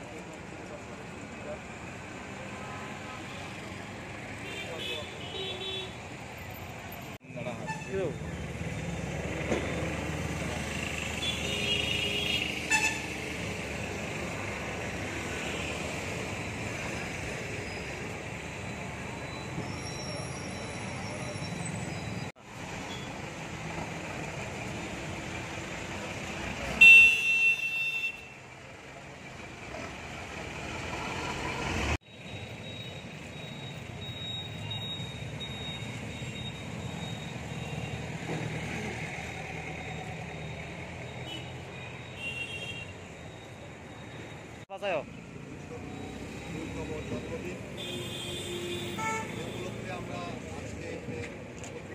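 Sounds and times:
street traffic noise: 0.0s - 51.9s.

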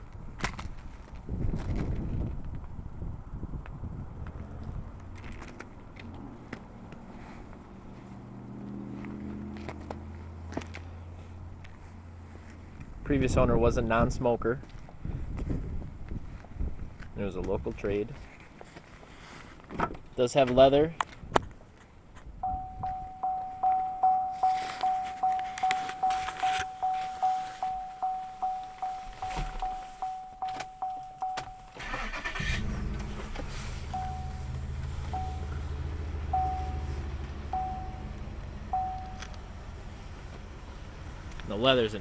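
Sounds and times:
car warning chime: 22.4s - 32.5s, 33.9s - 39.6s
car engine idling: 22.4s - 42.0s
car starter cranking: 30.4s - 36.9s.

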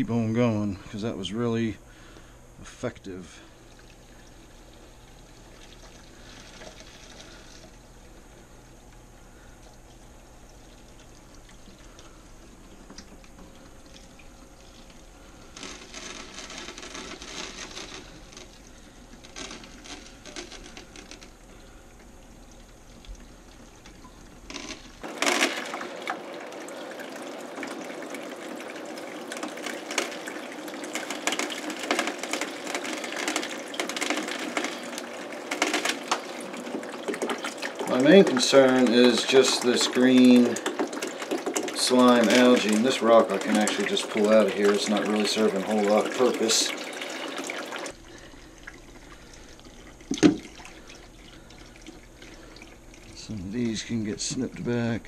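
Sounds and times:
siphon hose sucking water: 3.1s - 54.5s.

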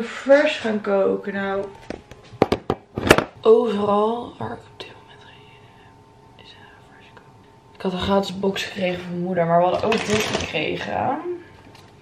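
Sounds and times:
woman talking: 0.0s - 1.8s, 3.4s - 5.4s, 7.8s - 11.5s.

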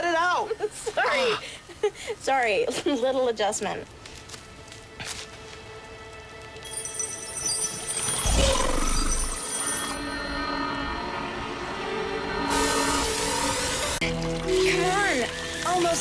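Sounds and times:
dramatic background score: 4.4s - 16.0s
sparks sizzling: 12.5s - 16.0s.

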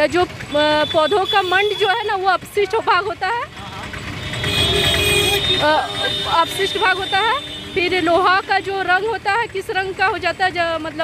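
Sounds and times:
motor vehicle passing: 1.3s - 11.0s.

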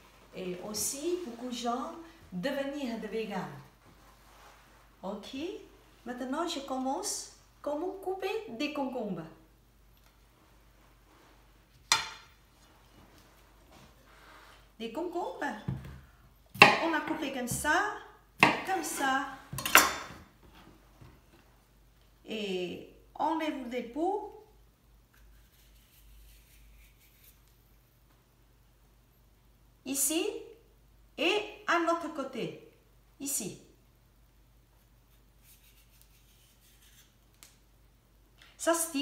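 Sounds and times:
peeler scraping cucumber skin: 25.1s - 27.5s, 35.4s - 37.5s.

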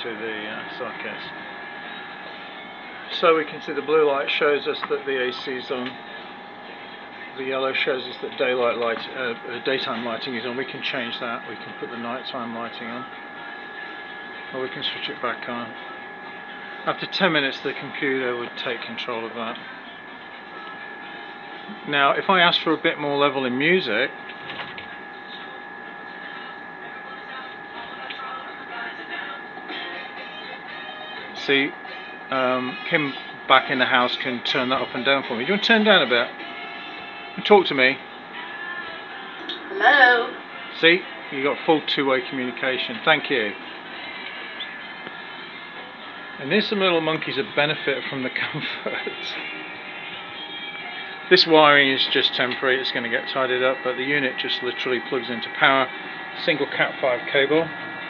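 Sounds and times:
air conditioner blowing hum: 0.0s - 58.0s
music through small intercom speaker: 0.0s - 58.0s.

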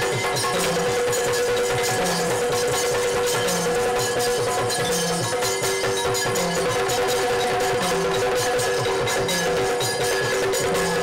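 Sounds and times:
rapid drumming: 0.0s - 11.0s
small cymbals ringing: 0.0s - 11.0s.

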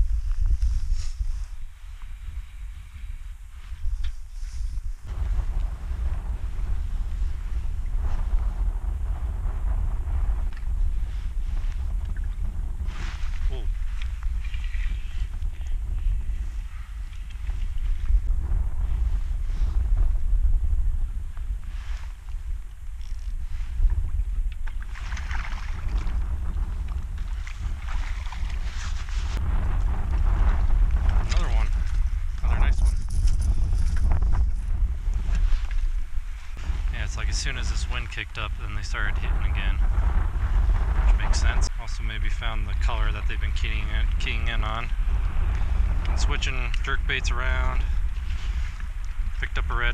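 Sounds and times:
wind buffeting microphone: 0.0s - 49.9s
water lapping and splashing: 24.5s - 29.4s.

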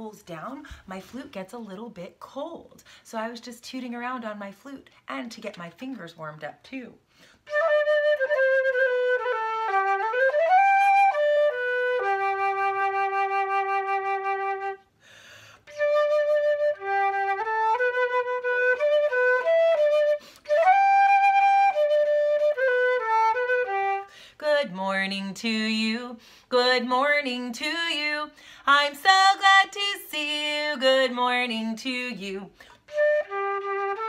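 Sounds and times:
flutist breath: 7.1s - 7.5s, 14.9s - 15.7s, 20.1s - 20.5s, 24.1s - 24.4s, 26.2s - 26.5s, 28.3s - 28.7s, 32.5s - 32.9s
flute melody: 7.4s - 14.9s, 15.6s - 24.1s, 32.8s - 34.0s.

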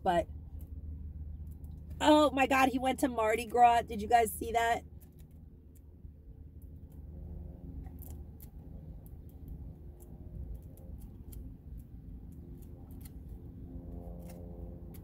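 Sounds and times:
low steady hum: 0.0s - 15.0s.

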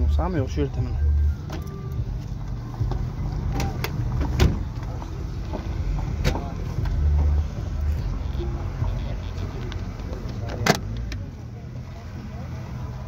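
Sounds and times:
faint background voices: 0.0s - 13.0s
car trunk lid thump: 3.6s - 4.7s.

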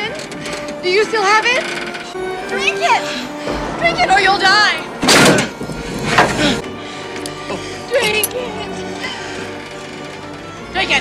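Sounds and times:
steady held notes: 0.5s - 9.9s.

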